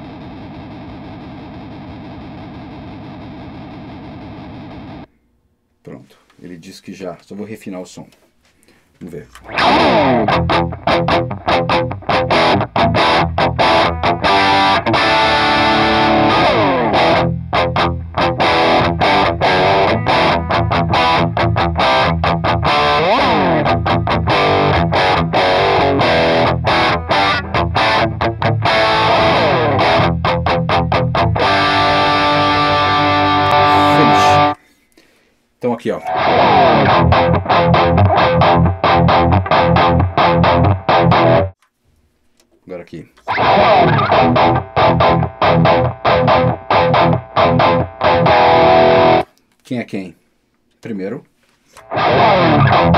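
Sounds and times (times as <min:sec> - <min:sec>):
distorted electric guitar lead: 0:00.0 - 0:05.1, 0:09.4 - 0:34.6, 0:36.0 - 0:41.6, 0:43.3 - 0:49.3, 0:51.8 - 0:52.9.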